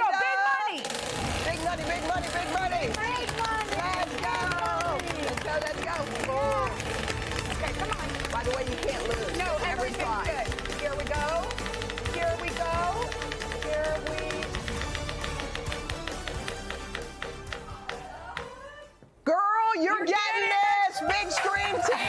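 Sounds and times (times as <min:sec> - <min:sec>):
music: 0:01.3 - 0:19.1
prize wheel pointer clicking: 0:06.7 - 0:18.0.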